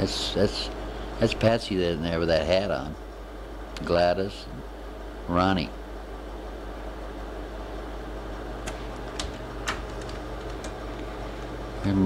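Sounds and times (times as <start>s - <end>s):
projector fan humming: 0.0s - 12.0s.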